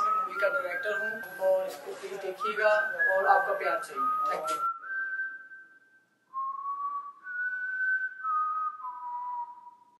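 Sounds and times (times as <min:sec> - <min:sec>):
slow whistled tune: 0:00.0 - 0:01.8, 0:02.4 - 0:10.0.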